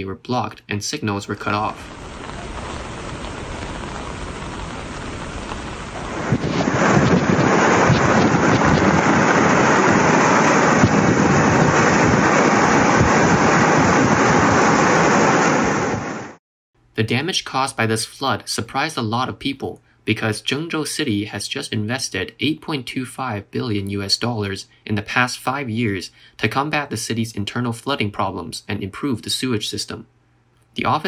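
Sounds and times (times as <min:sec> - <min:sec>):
heavy rain: 0:01.6 - 0:16.4
rushing floodwater: 0:01.8 - 0:16.2.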